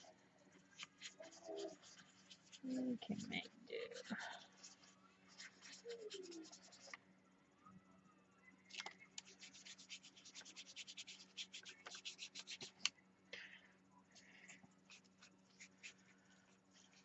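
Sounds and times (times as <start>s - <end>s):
steady low hum: 0.0s - 17.0s
paintbrush scrubbing on paper: 0.8s - 6.9s, 9.2s - 12.8s, 14.8s - 17.0s.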